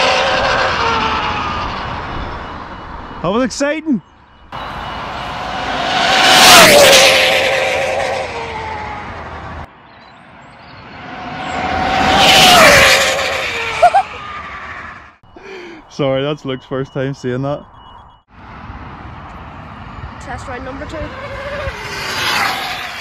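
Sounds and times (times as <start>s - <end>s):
rc car passing at high speed: 0.0s - 3.2s, 4.6s - 15.2s, 18.4s - 23.0s.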